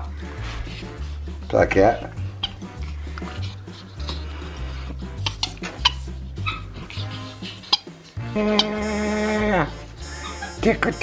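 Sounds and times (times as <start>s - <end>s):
monkey squeaking: 2.2s - 4.2s, 5.2s - 11.0s.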